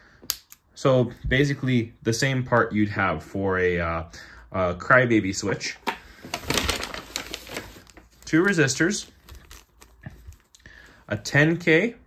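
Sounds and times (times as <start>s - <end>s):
plastic bag crinkling and clicks: 5.9s - 10.6s.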